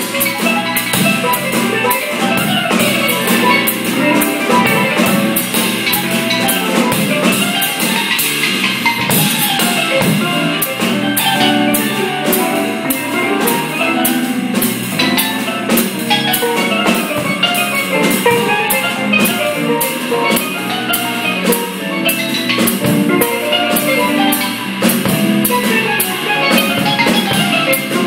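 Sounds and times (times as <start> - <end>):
bass: 0.0 - 28.0
drum kit: 0.0 - 28.0.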